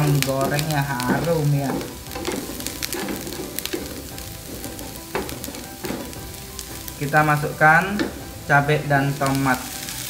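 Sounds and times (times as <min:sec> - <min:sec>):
onion frying in oil: 0:00.0 - 0:10.0
wooden spatula scraping a pan: 0:00.0 - 0:10.0.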